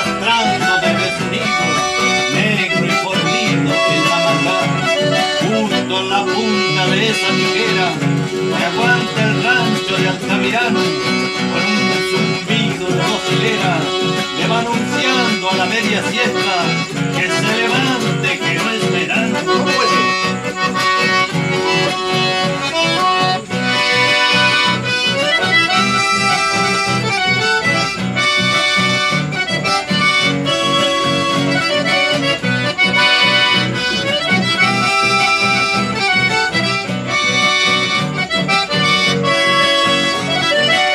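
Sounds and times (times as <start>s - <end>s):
accordion playing folk tune: 0.0s - 40.9s.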